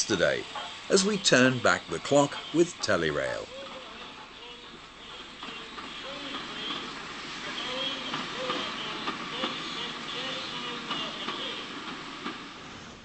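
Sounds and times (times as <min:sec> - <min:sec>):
track clicks: 0:00.0 - 0:12.5
steam train running past: 0:00.0 - 0:13.0.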